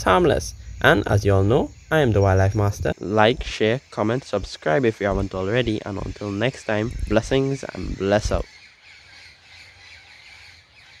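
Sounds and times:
distant birds calling: 0.0 - 11.0.

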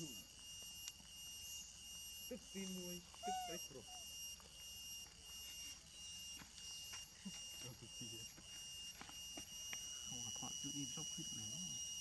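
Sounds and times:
high-pitched insect drone: 0.0 - 12.0.

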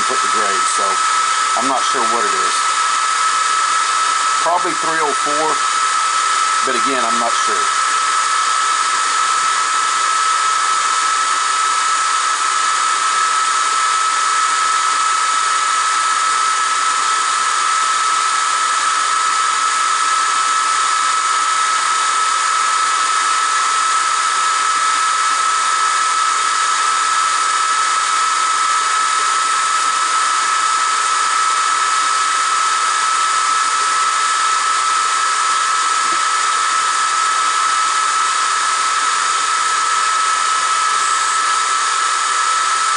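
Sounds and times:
laser engraver high whine: 0.0 - 42.9.

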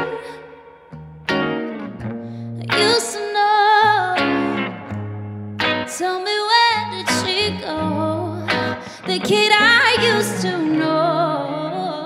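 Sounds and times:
woman singing with vibrato: 0.0 - 0.9, 2.6 - 4.9, 5.9 - 12.0
electric guitar chords: 0.0 - 12.0.

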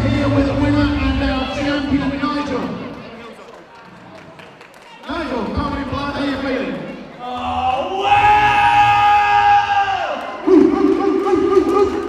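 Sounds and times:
rough wavering yell: 7.3 - 12.0.

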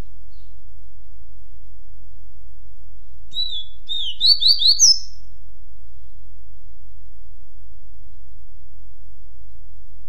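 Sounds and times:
low hum: 0.0 - 4.4, 5.0 - 10.0
bird singing whistled notes: 3.3 - 5.3.

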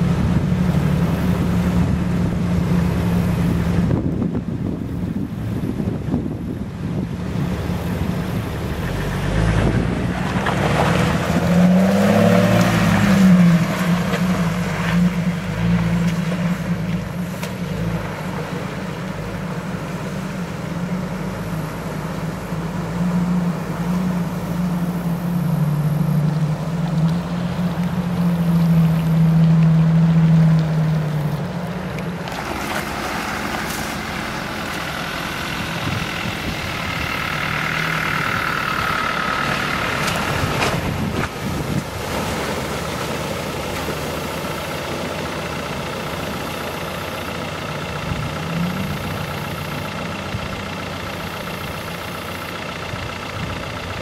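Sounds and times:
close noisy vehicle: 0.0 - 54.0
off-road vehicle engines crawling: 0.0 - 54.0.

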